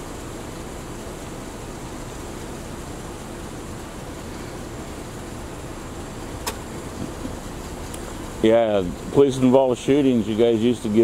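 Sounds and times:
low outdoor rumble: 0.0s - 11.0s
sharp click: 6.4s - 6.7s.

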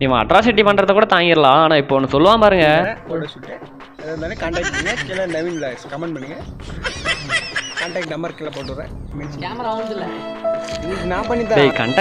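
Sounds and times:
high-pitched snickering laughter: 6.8s - 8.1s.

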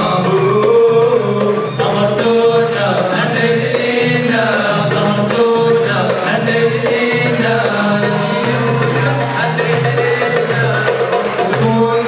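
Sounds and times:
men singing a chant together: 0.0s - 12.0s
steady musical accompaniment: 0.0s - 12.0s.

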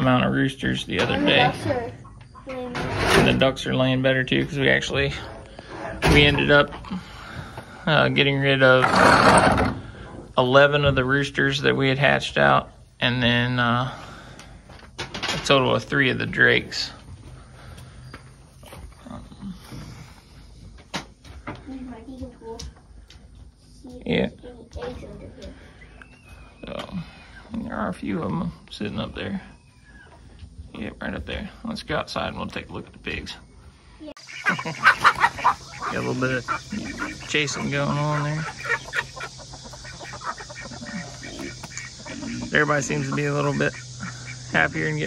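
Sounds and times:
chickens clucking: 0.0s - 45.0s
steady low hum: 0.0s - 45.0s
ducks quacking: 34.2s - 45.0s.

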